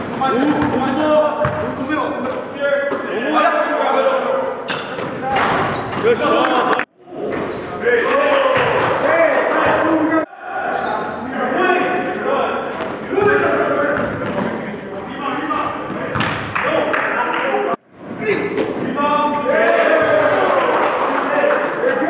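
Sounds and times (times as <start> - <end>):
basketball bouncing echoing: 0.0 - 1.8.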